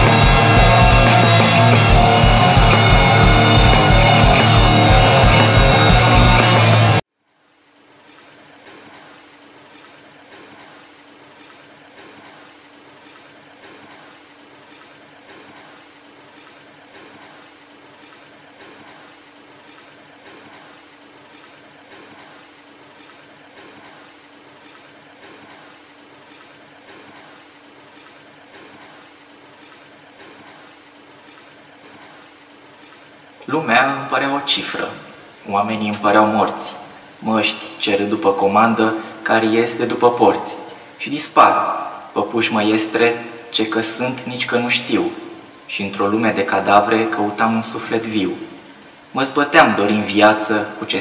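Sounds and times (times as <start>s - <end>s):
steady hiss: 7.8s - 51.0s.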